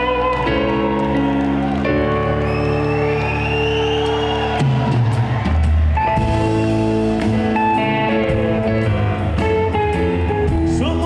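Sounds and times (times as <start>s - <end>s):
bass guitar: 0.0s - 11.0s
drums: 0.0s - 11.0s
electric guitar: 0.0s - 11.0s.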